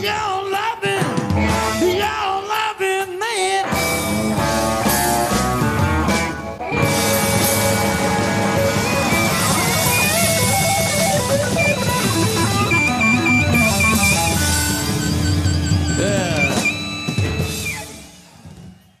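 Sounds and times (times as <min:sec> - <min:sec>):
bass guitar: 0:00.0 - 0:02.6, 0:03.5 - 0:18.1
drums: 0:00.0 - 0:19.0
electric lead guitar with bent notes: 0:00.9 - 0:02.0, 0:03.6 - 0:18.2.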